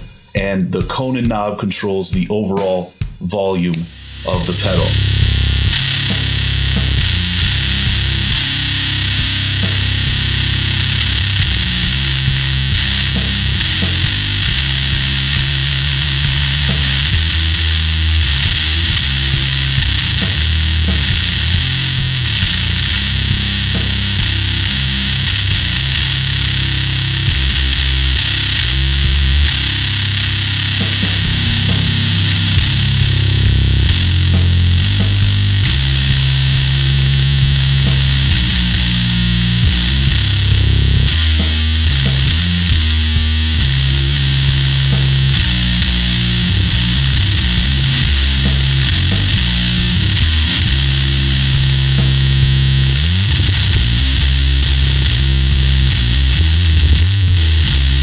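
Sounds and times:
fuzz bass guitar riff: 0.0 - 58.0.

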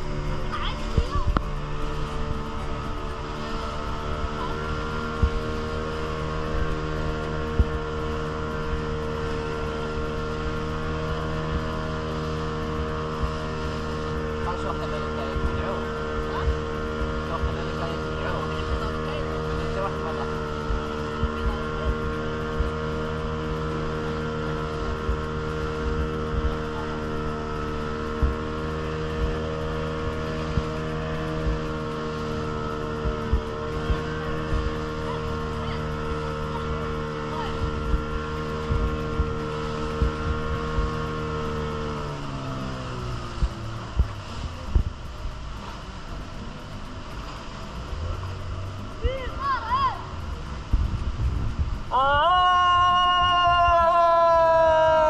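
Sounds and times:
motorboat engine running: 0.0 - 55.0
water rushing along hull: 0.0 - 55.0.

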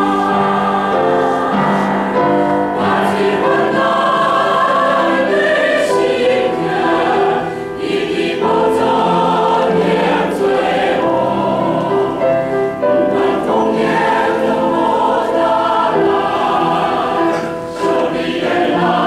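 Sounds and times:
choir singing a hymn: 0.0 - 19.0.

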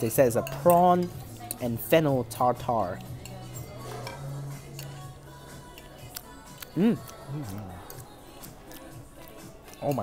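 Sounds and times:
soft background music: 0.0 - 10.0
cutlery clinking on a plate: 3.0 - 4.9, 9.7 - 10.0
person humming: 3.7 - 8.2.

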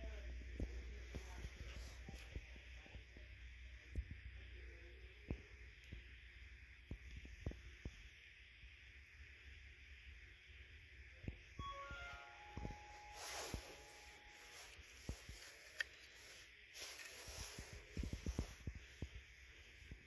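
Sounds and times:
faint music over loudspeaker: 0.0 - 5.5, 11.6 - 15.4.

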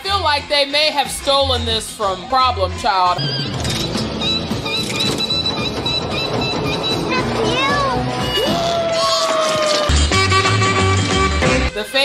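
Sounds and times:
carnival ride rattling clatter: 3.2 - 9.2.

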